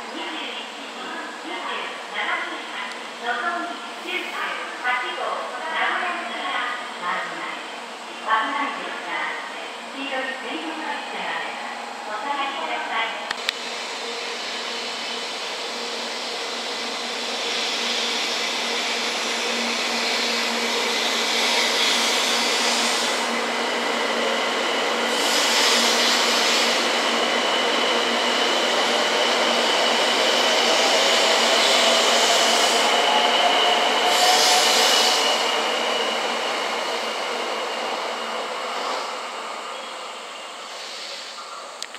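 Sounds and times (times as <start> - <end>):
train accelerating away: 9.4 - 41.8.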